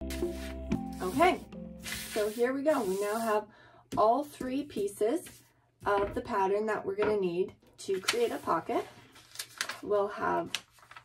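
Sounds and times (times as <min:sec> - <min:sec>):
plucked-string background music: 0:00.0 - 0:02.1
paper sliding on cutting mat: 0:00.1 - 0:03.3
person speaking: 0:00.9 - 0:03.4.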